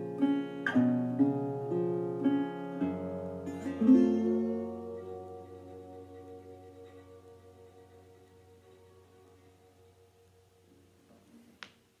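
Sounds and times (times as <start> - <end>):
resonator guitar slide chord: 0.0 - 11.0.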